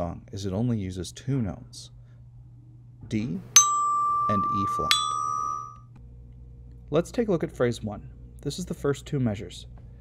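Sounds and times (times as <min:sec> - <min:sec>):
glockenspiel bar struck: 0:03.6 - 0:05.8.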